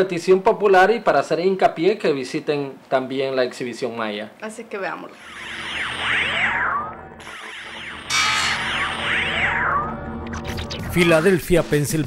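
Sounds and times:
synthesized ident sting: 0:05.2 - 0:10.9.

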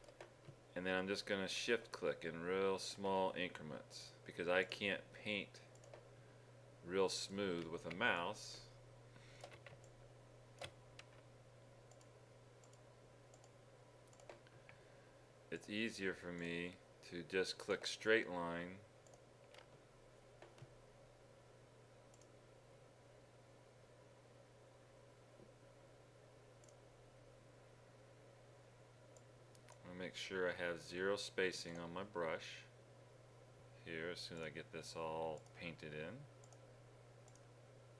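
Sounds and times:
computer mouse clicks: 0:00.0 - 0:00.6, 0:05.7 - 0:06.1, 0:11.9 - 0:14.8, 0:19.0 - 0:19.7, 0:22.1 - 0:22.3, 0:26.6 - 0:26.8, 0:29.2 - 0:29.8, 0:36.4 - 0:36.6, 0:37.2 - 0:37.5
steady low hum: 0:00.0 - 0:37.9.

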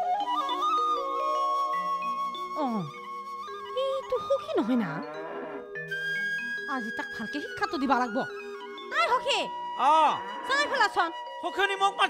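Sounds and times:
music with held notes: 0:00.0 - 0:12.0.

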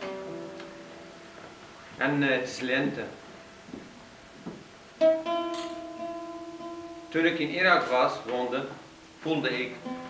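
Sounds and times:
oud plucked notes: 0:00.0 - 0:01.4, 0:05.0 - 0:10.0.

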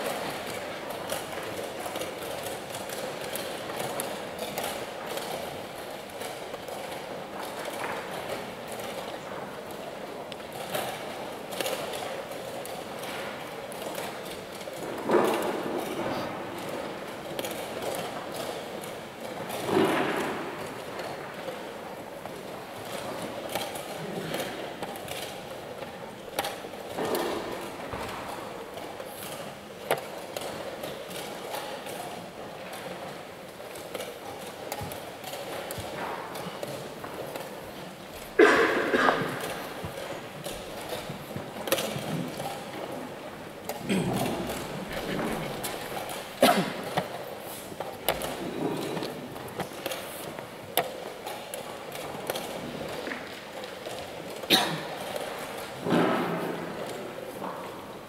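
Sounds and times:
murmur of voices: 0:35.7 - 0:50.3.

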